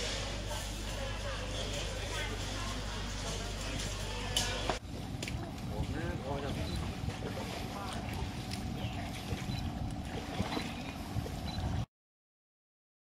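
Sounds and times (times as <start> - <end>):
faint voices: 0.0 - 11.1
low outdoor rumble: 0.0 - 11.9.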